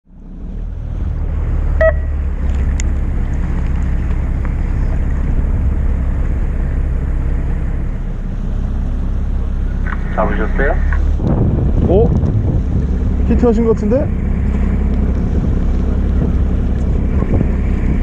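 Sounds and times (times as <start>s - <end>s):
boat engine rumble: 0.0s - 18.0s
water: 0.1s - 10.0s
short beep: 1.8s - 2.2s
wind on microphone: 10.9s - 18.0s.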